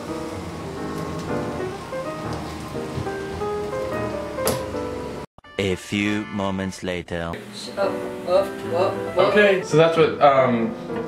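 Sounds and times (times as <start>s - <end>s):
fries sizzling in grease: 0.0s - 5.2s, 7.5s - 11.0s
background music: 0.0s - 11.0s.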